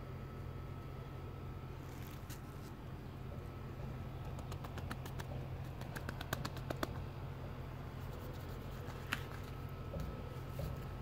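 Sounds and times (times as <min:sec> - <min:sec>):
steady low hum: 0:00.0 - 0:11.0
fingertips tapping on concrete: 0:04.2 - 0:07.1.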